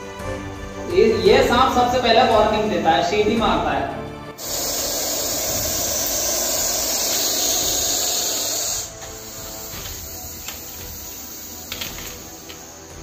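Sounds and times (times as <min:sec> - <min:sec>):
snake hissing: 0:04.4 - 0:13.0.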